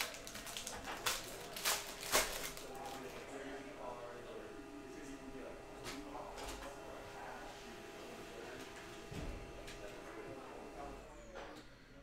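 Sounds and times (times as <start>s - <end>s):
plastic wrapper rustling: 0.0s - 3.2s.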